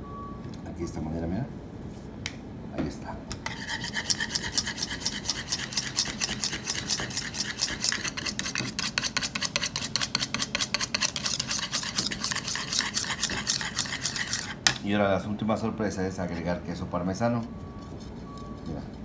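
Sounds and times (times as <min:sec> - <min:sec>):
whisk scraping a bowl: 0:03.4 - 0:14.8.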